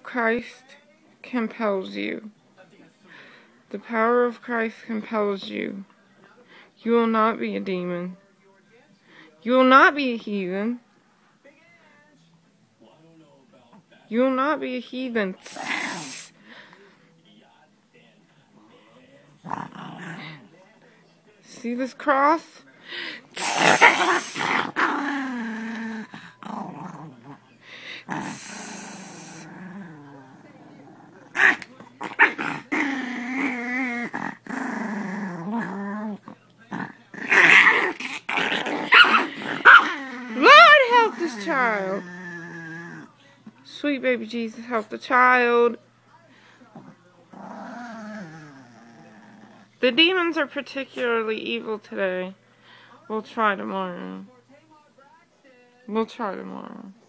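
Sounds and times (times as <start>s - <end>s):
dog growling: 15.4s - 16.3s, 19.4s - 20.6s, 23.3s - 43.2s, 46.7s - 49.9s, 56.5s - 57.0s.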